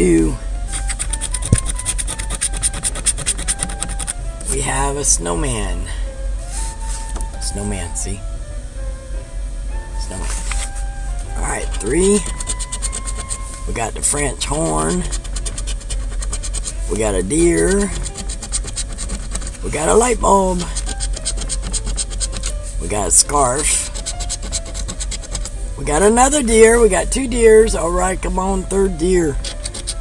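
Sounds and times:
scratcher scraping a ticket: 0.6s - 4.7s, 10.1s - 30.0s.

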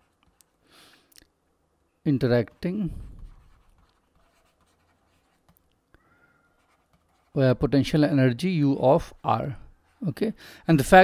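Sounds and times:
stylus scratching on tablet: 2.2s - 5.8s, 6.4s - 8.0s, 8.6s - 11.0s.

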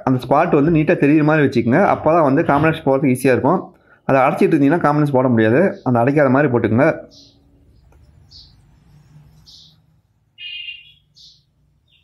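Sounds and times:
small bird chirping: 7.0s - 12.0s.

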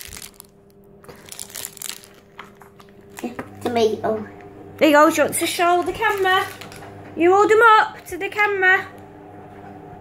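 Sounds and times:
foil wrapper crinkling: 0.0s - 3.3s, 5.7s - 6.8s.

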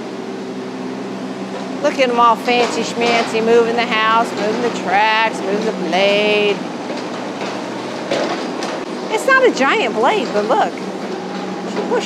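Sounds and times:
excavator diesel engine running: 0.0s - 12.0s.

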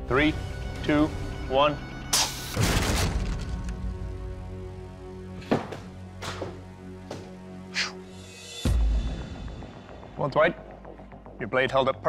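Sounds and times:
background music sustained tones: 0.0s - 12.0s.

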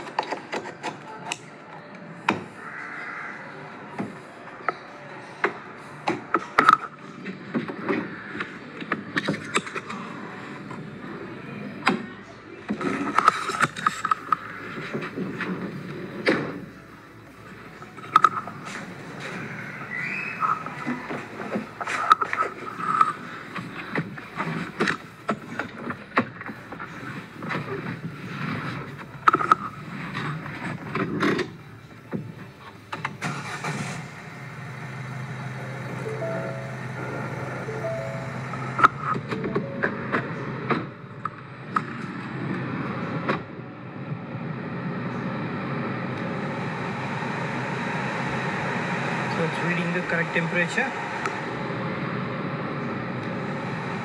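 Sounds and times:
car engine starting and idling: 13.6s - 41.3s.

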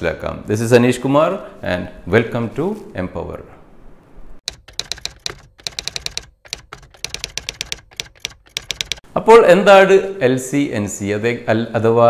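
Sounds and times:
rapid keystroke clicks: 4.4s - 9.0s.

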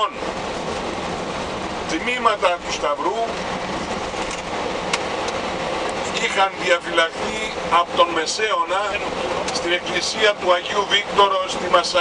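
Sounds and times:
bus engine and road noise: 0.0s - 12.0s.

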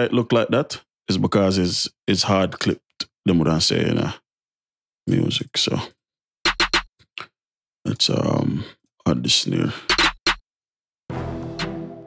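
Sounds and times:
clipped snare drum hits: 11.5s - 11.9s.

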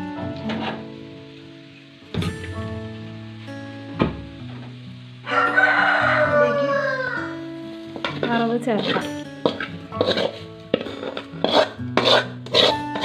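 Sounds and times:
background music: 0.0s - 13.0s
rooster crowing: 5.2s - 7.4s
metal cookware clanks: 7.9s - 13.0s.

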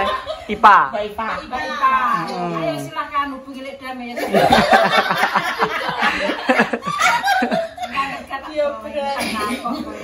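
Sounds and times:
women laughing: 4.2s - 8.3s.

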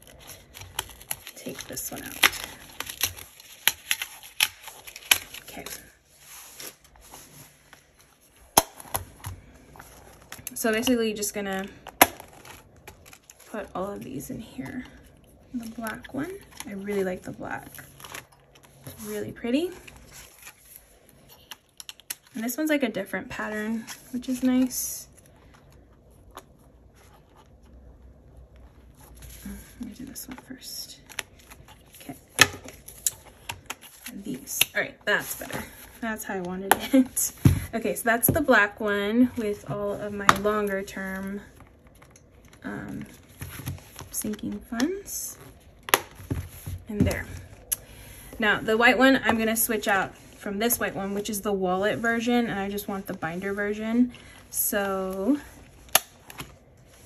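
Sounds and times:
plastic and paper rustling: 0.0s - 22.5s.

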